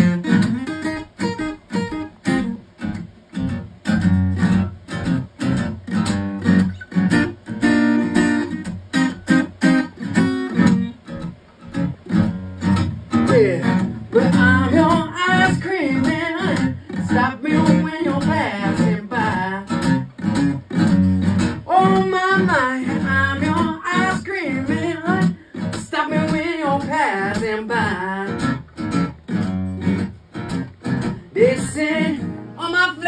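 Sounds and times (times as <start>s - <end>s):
acoustic blues guitar: 0.0s - 33.0s.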